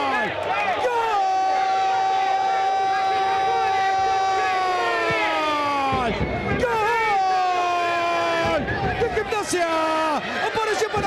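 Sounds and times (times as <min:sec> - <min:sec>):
faint crowd: 0:00.0 - 0:11.0
male commentator goal cry: 0:00.0 - 0:11.0.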